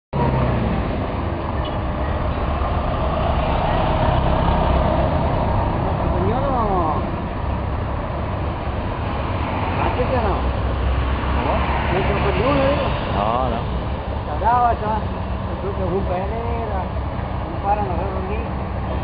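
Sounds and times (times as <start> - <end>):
cars driving past: 0.2 - 19.0.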